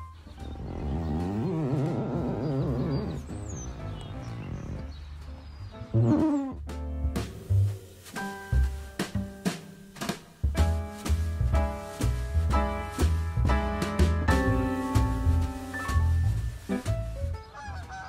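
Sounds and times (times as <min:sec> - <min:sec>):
hand squeaking on window glass: 0:00.4 - 0:05.1.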